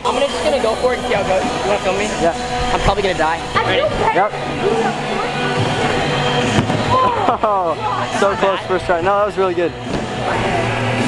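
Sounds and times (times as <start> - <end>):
background music: 0.0 - 11.0
gym crowd noise: 0.0 - 11.0
person landing on gym mat: 6.5 - 7.1.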